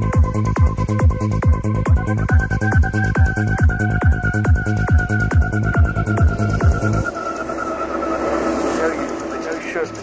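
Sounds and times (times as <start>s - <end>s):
synth pad tones: 2.1s - 10.0s.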